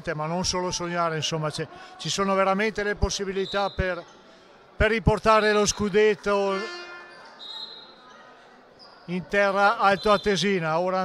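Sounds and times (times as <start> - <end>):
low crowd and court noise: 0.0 - 11.0.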